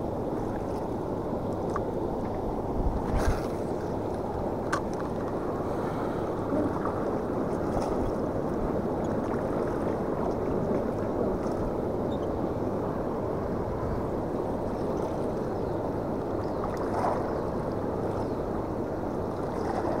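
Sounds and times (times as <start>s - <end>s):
wind on microphone: 0.0s - 20.0s.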